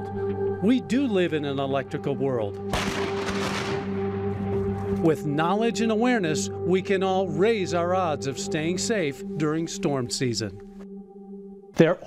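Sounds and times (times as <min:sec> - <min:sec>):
held background music chord: 0:00.0 - 0:12.0
thunder crash: 0:02.7 - 0:04.0.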